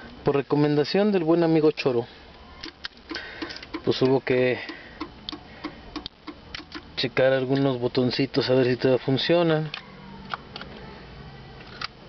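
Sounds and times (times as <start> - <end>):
turn signal relay ticking: 2.6 - 8.8.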